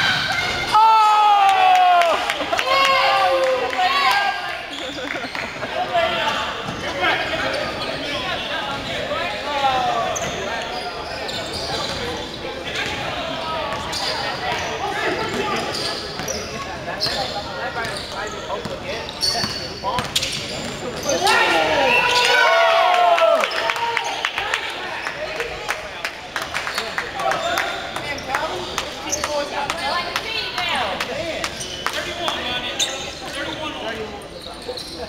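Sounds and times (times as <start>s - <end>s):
players shouting and chattering: 0.0s - 35.0s.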